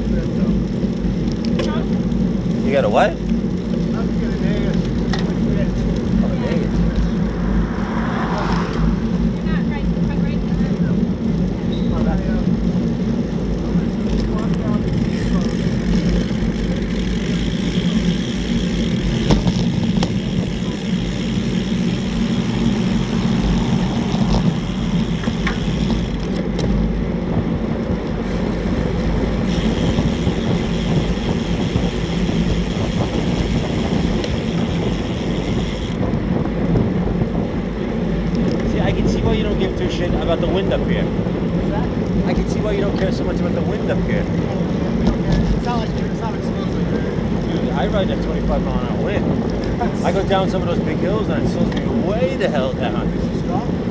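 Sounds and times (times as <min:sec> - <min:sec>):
road and tyre rumble: 0:00.0 - 0:53.9
wind rush on microphone: 0:03.9 - 0:53.9.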